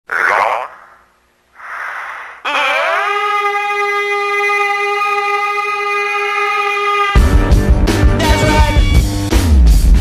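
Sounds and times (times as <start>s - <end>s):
breathy sound: 1.6s - 3.1s.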